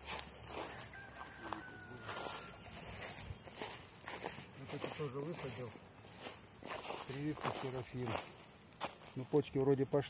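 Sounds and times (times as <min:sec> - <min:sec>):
footsteps in grass: 0:00.0 - 0:09.9
faint rooster crowing: 0:00.4 - 0:03.7.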